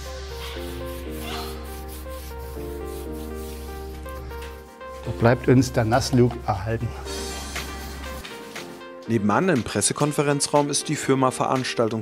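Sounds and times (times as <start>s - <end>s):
music of slow sustained chords: 0.0s - 9.5s
brush rubbing on stone: 0.4s - 5.2s, 7.2s - 8.8s.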